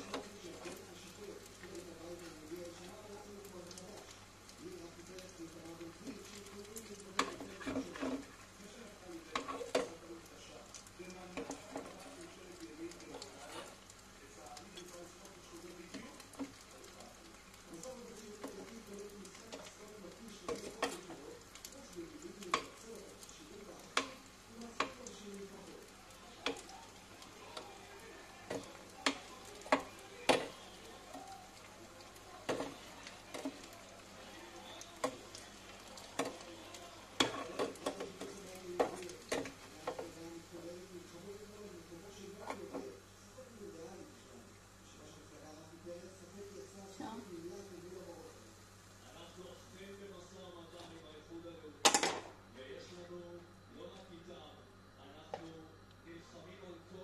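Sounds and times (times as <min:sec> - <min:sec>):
food sizzling in oil: 0:00.0 - 0:52.8.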